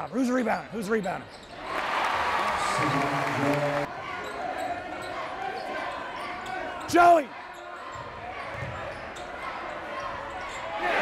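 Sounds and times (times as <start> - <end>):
basketball crowd and court noise: 0.0 - 11.0.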